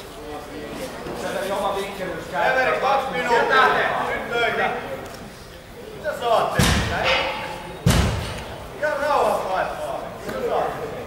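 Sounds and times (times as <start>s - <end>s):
thumps with echo: 6.6s - 8.6s.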